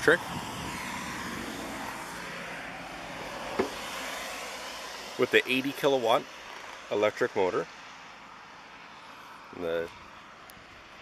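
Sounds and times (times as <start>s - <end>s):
traffic hiss on wet pavement: 0.0s - 11.0s.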